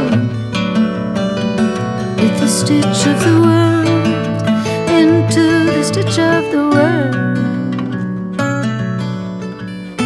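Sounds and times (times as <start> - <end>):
acoustic guitar playing: 0.0 - 10.0.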